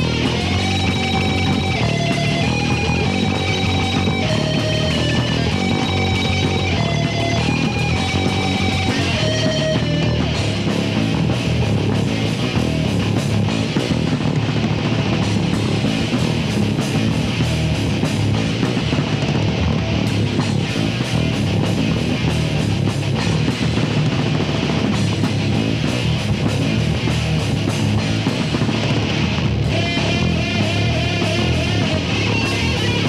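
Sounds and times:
bass guitar: 0.0 - 33.0
distorted electric guitar: 0.0 - 33.0
drum kit: 0.0 - 33.0.

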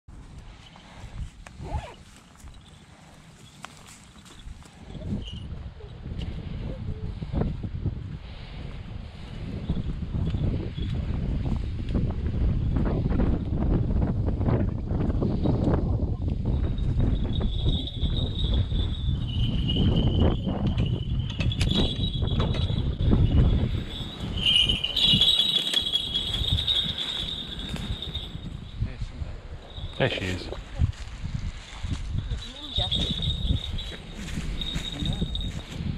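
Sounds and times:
wind buffeting microphone: 0.1 - 35.9
footsteps crunching: 1.3 - 4.9, 24.7 - 28.5, 30.6 - 32.8
high thin steady tone: 23.5 - 29.0.

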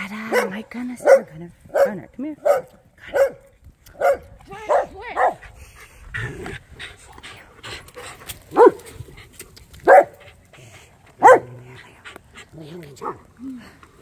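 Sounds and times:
dog barking: 0.3 - 3.4, 4.0 - 5.4, 8.5 - 8.8, 9.8 - 10.2, 11.2 - 11.5.

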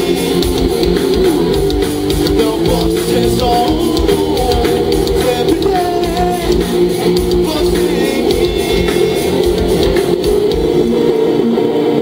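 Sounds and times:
drum hits: 0.0 - 11.0
electric guitars and bass chords: 0.0 - 12.0.

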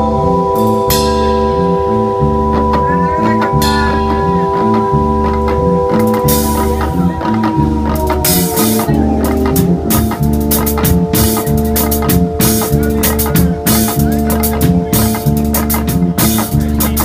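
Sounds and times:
drum kit: 0.0 - 17.0
electric guitars: 0.0 - 17.0
long-held keyboard chord: 0.0 - 17.0
pulsing bass line: 0.0 - 17.0.

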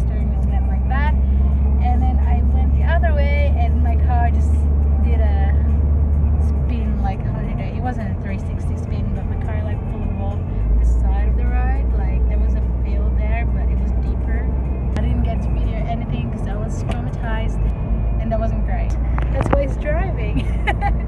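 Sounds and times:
woman talking: 0.0 - 1.2, 1.8 - 5.7, 6.4 - 17.6, 18.2 - 21.0
car driving rumble: 0.0 - 21.0.

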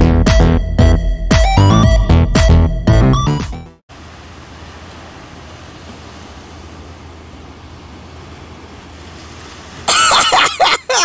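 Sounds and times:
surf: 3.9 - 11.0.

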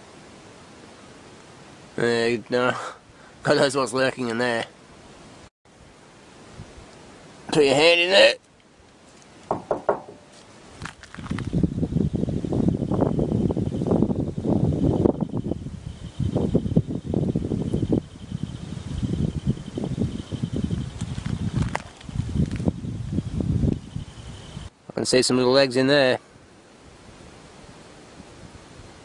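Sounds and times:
faint high whine: 9.1 - 29.0.

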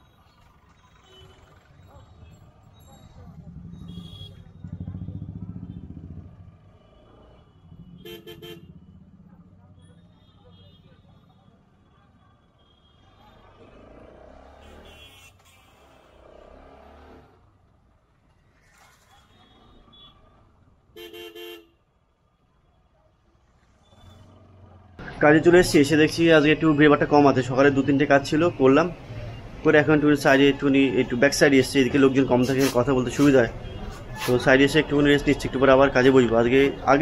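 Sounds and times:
faint street noise: 0.0 - 37.0
vehicle horn beeps: 1.0 - 1.6, 3.8 - 4.6, 7.9 - 8.8, 14.6 - 16.0, 21.0 - 21.7
vehicle engine passing: 16.2 - 17.4.

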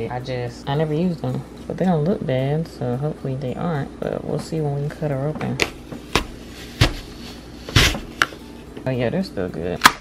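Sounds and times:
apple slicer crunching apple: 6.1 - 8.3.

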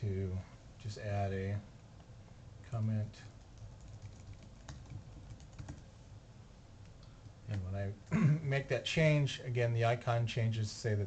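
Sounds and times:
typing on computer keyboard: 3.4 - 5.9.

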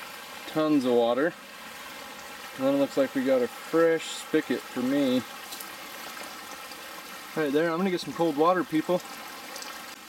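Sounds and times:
water pouring into basin: 0.0 - 10.0.

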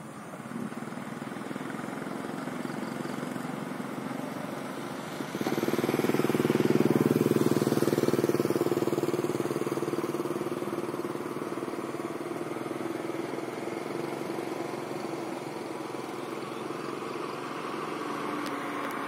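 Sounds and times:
small engine running: 0.0 - 19.0.

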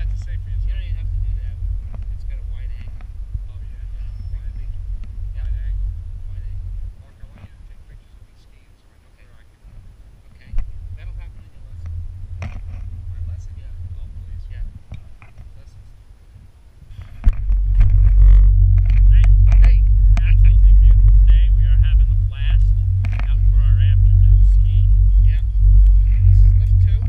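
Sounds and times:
man talking: 0.0 - 9.7, 10.3 - 11.9, 13.1 - 14.9, 15.5 - 16.0, 18.9 - 27.0
faint voices: 0.0 - 11.9, 18.2 - 27.0
steady low rumble: 0.0 - 27.0
wind buffeting microphone: 0.0 - 27.0.

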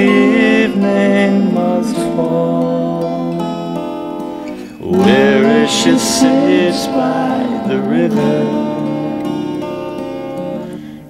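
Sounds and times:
twelve-string acoustic guitar chords: 0.0 - 11.0.

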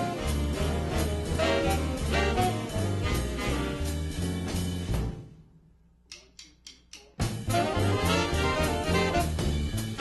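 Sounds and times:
jazz band playing: 0.0 - 5.2, 7.2 - 10.0.

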